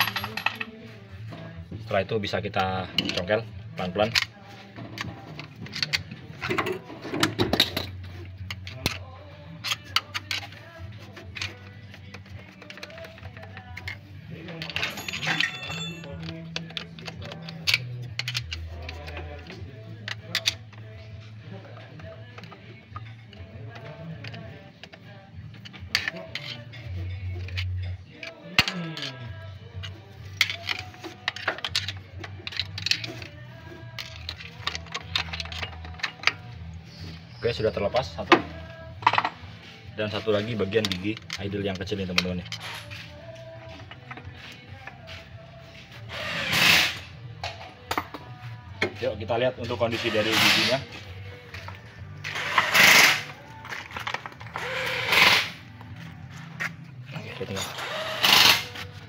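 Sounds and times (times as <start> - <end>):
background music with bass line: 0.0 - 59.0
screwdriver clicking on metal gears: 8.4 - 21.0, 21.8 - 36.5, 49.9 - 50.9, 51.6 - 53.4, 54.0 - 55.7, 57.3 - 58.9.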